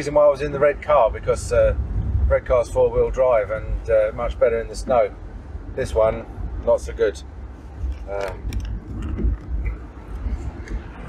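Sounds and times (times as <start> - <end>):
car engine rumble: 0.0 - 11.0
tyres on wet road: 0.0 - 11.0.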